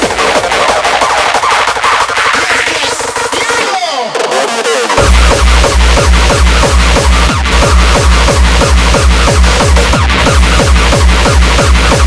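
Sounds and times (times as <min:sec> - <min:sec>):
dance track kick and bass: 0:00.0 - 0:12.0.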